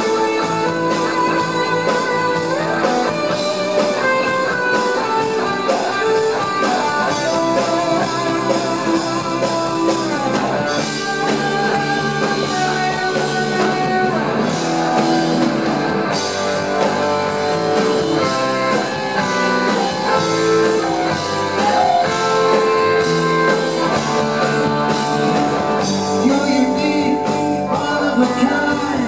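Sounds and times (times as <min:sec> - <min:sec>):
drum kit: 0:00.0 - 0:29.0
electric bass: 0:00.0 - 0:29.0
electric guitars: 0:00.0 - 0:29.0.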